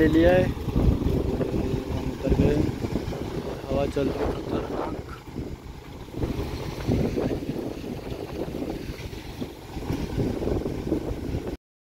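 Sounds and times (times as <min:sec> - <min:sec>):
wind gusting on microphone: 0:00.0 - 0:11.6.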